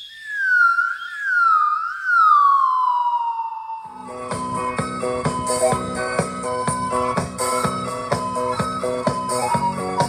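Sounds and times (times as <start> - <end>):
whistling tone gliding downward: 0.0 - 10.0.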